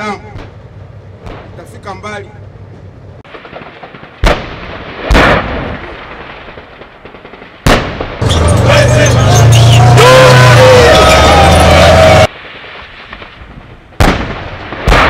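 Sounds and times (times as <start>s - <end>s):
artillery blasts: 3.2s - 15.0s
armoured vehicle engine rumble: 8.2s - 12.3s.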